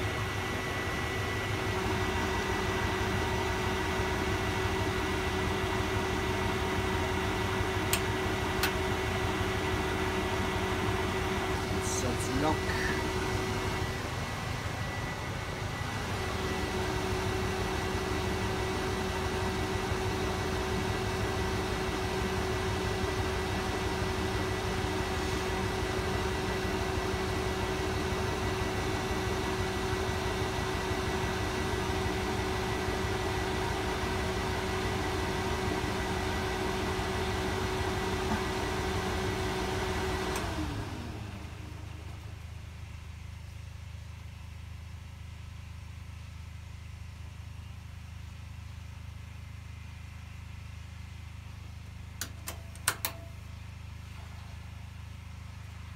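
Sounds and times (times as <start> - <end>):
washing machine spinning: 0.0 - 42.4, 52.1 - 54.6.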